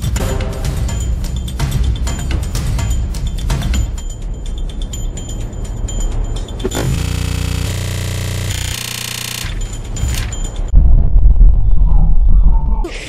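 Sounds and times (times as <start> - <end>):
tense ticking background music: 0.0 - 10.8
harsh buzzing sound effect: 6.6 - 10.3.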